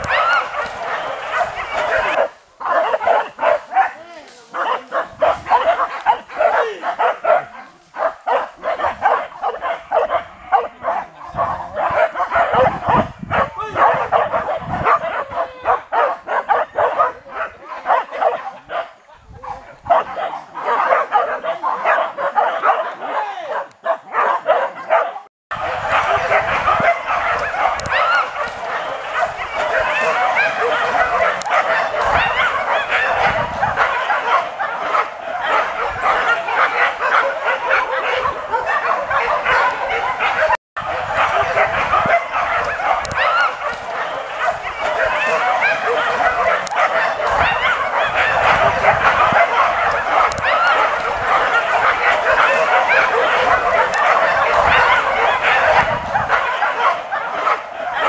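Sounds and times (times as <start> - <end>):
dogs barking and yelping: 0.0 - 58.0.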